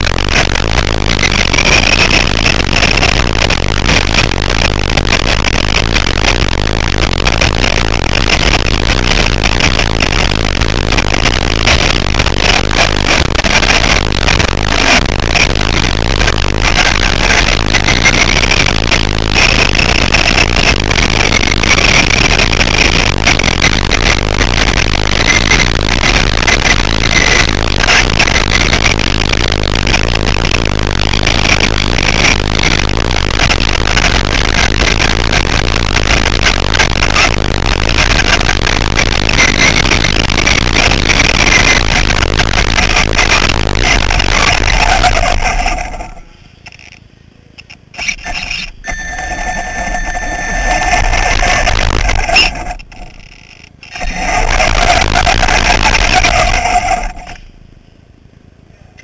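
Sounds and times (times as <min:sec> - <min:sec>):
rc truck motor and tyres rushing: 0:00.0 - 0:47.0, 0:47.6 - 0:57.7.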